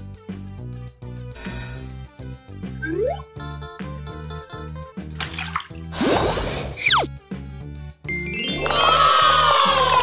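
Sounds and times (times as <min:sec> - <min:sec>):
light background music with beat: 0:00.0 - 0:06.0
watery splash and bubbling: 0:05.2 - 0:06.8.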